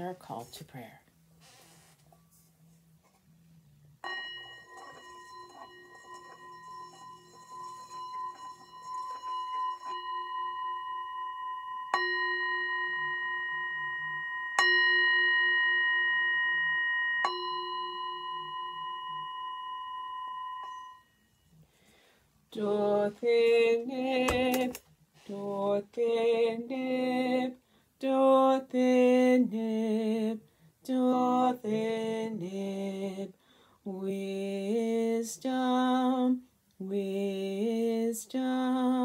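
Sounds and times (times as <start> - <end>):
singing bowl ringing: 4.0 - 21.7.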